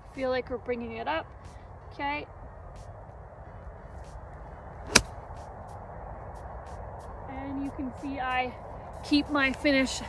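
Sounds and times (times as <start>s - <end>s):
golf club striking ball: 4.8s - 5.2s.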